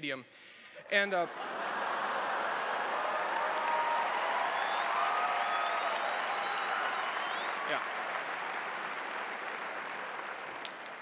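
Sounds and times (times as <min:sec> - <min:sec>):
arena audience applauding: 0:01.4 - 0:11.0.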